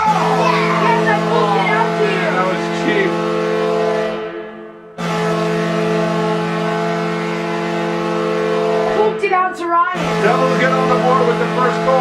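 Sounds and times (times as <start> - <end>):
goal horn blast: 0.0 - 9.3, 9.9 - 12.0.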